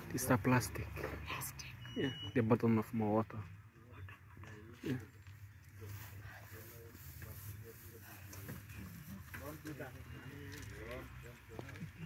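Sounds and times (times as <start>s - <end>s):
faint murmured voices: 3.6s - 12.0s.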